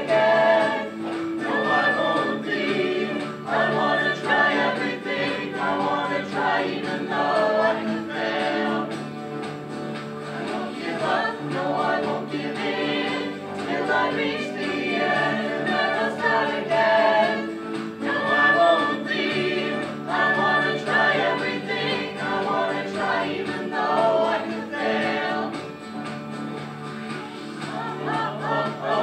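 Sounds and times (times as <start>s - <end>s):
mixed choir singing: 0.0s - 9.2s, 10.2s - 26.0s, 27.2s - 29.0s.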